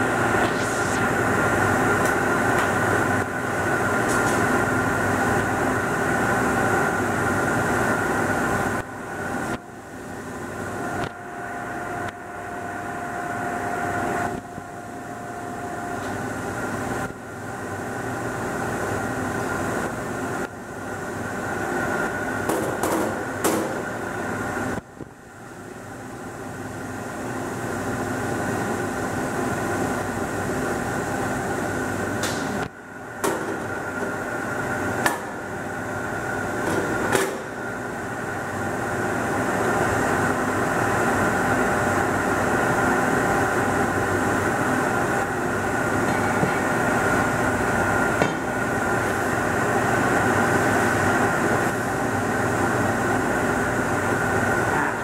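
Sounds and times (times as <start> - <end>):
furnace machinery humming: 0.0 - 55.0.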